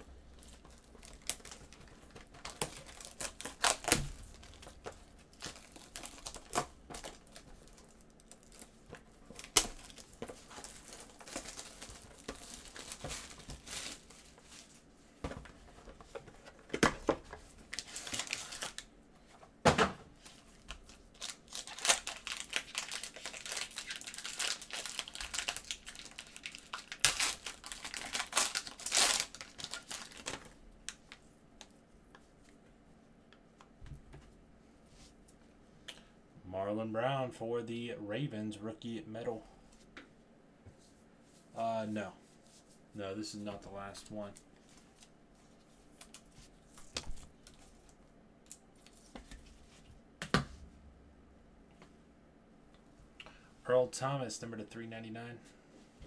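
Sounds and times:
plastic and foil crinkling: 0:00.3 - 0:14.8, 0:17.6 - 0:18.9, 0:20.2 - 0:31.2
wrapper tearing open: 0:00.4 - 0:01.8, 0:02.4 - 0:08.7, 0:17.7 - 0:18.9, 0:20.7 - 0:30.6.

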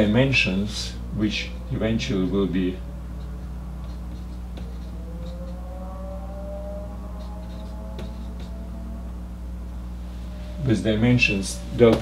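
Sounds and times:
steady low hum: 0:00.0 - 0:12.0
faint rising tone: 0:00.6 - 0:11.8
marker writing on whiteboard: 0:03.2 - 0:05.6, 0:07.2 - 0:08.7.

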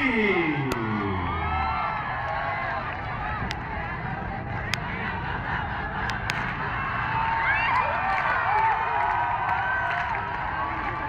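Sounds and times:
crowd shouting and calling: 0:00.0 - 0:11.0.

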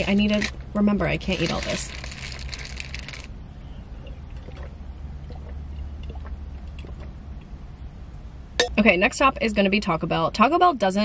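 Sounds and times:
paper wrapper crinkling: 0:00.0 - 0:03.3
low steady rumble: 0:00.0 - 0:11.0.

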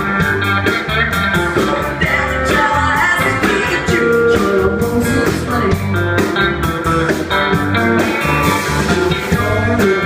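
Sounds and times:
amplified guitar lead: 0:00.0 - 0:10.0
blues band playing: 0:00.0 - 0:10.0.

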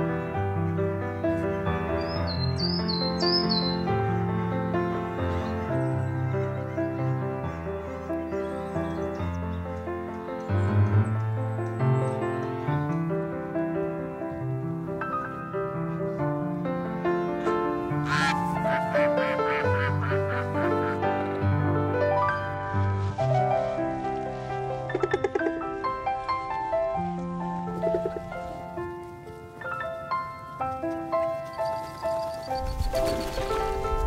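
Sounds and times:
gentle piano music: 0:00.0 - 0:34.0.

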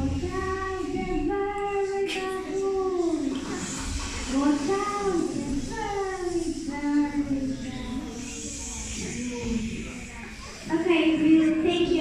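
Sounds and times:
child singing: 0:00.0 - 0:03.7, 0:04.3 - 0:10.0, 0:10.7 - 0:12.0.

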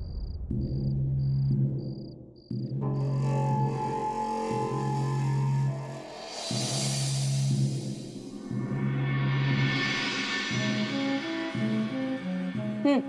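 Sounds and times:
low sustained drone: 0:02.8 - 0:12.8.

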